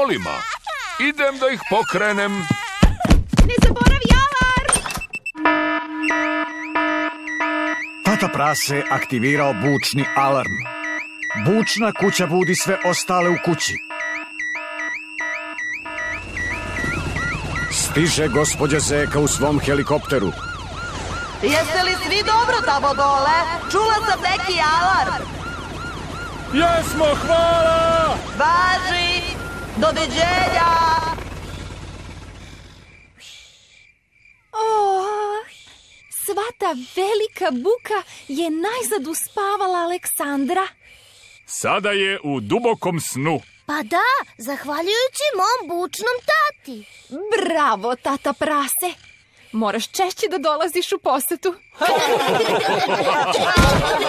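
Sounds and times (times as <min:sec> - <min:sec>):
cartoon car alarm whooping: 0:04.1 - 0:31.6, 0:51.7 - 0:54.0
faint crickets: 0:26.0 - 0:54.0.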